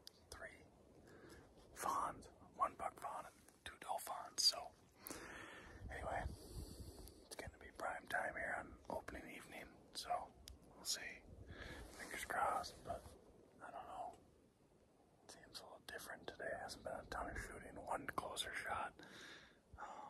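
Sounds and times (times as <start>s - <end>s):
man whispering: 0.1s - 0.7s, 1.6s - 4.9s, 5.8s - 14.2s, 15.3s - 19.1s
breathy hiss: 5.0s - 5.7s.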